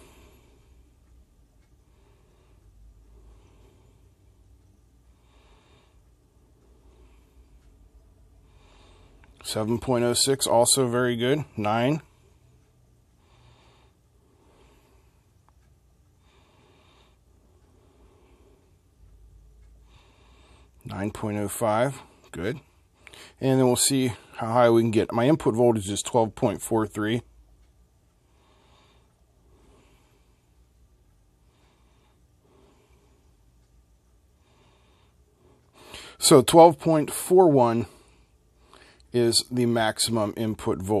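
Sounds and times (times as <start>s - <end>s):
faint breaths: 0.0s - 41.0s
low steady hum: 0.0s - 41.0s
intake of breath: 34.4s - 36.2s.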